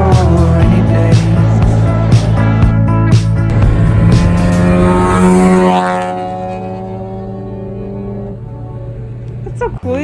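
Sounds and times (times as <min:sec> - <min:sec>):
car engine accelerating: 0:00.0 - 0:10.0
music track: 0:00.2 - 0:07.2.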